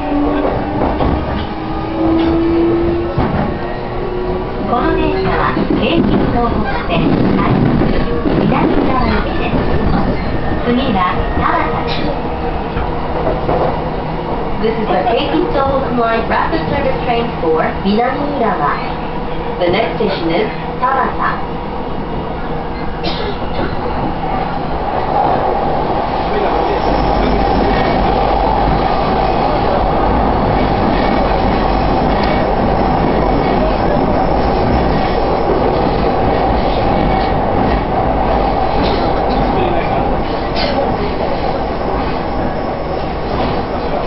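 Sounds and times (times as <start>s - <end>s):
train cabin running noise: 0.0s - 44.0s.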